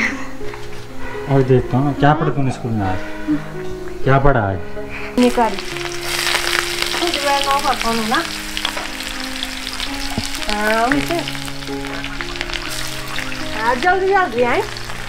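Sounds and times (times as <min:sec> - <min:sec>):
food sizzling in hot oil: 0:05.2 - 0:15.0.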